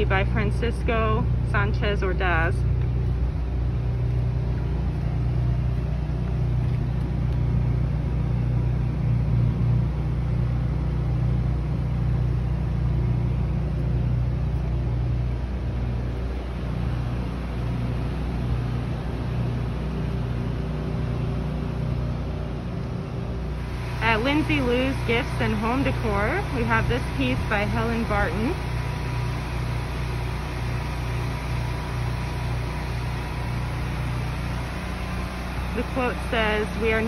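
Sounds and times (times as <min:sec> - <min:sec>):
truck engine rumbling: 0:00.0 - 0:37.0.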